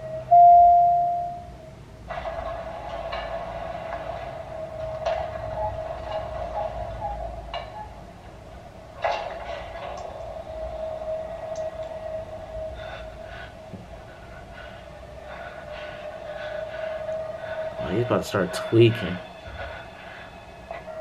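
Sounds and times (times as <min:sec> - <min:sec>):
steady drone: 0:00.0 - 0:21.0.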